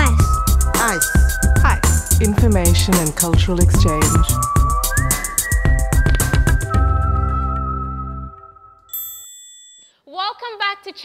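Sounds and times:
bright chime ringing: 8.9s - 10.0s.

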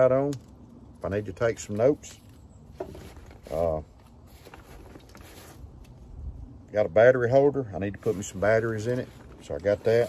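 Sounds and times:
low steady outdoor background: 0.0s - 10.0s
clicks and rustles of handling: 0.2s - 6.0s.

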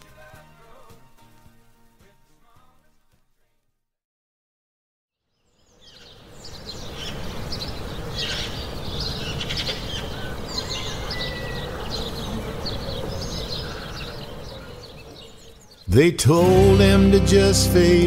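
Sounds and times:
outdoor background noise: 5.2s - 16.3s.

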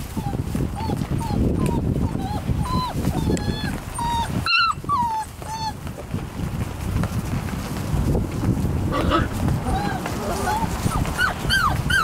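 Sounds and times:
puppies whining and yipping: 0.0s - 5.9s, 9.0s - 12.0s
wood shavings rustling: 9.2s - 11.9s.

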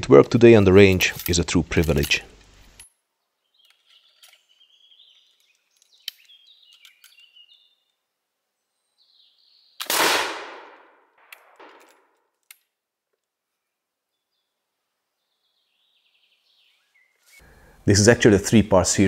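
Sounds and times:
ramrod clinking and scraping: 0.2s - 3.0s, 3.6s - 7.4s
musket shot: 9.8s - 12.1s.

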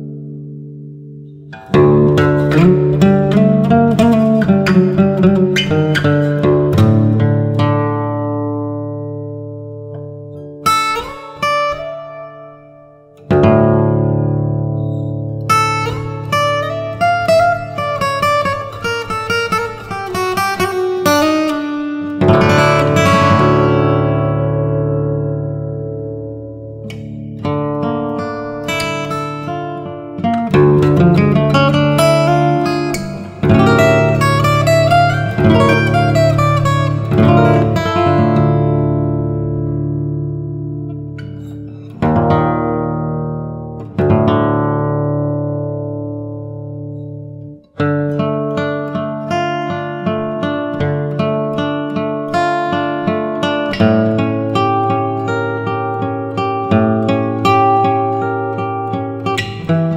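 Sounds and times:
fingerstyle acoustic guitar: 0.0s - 59.9s.

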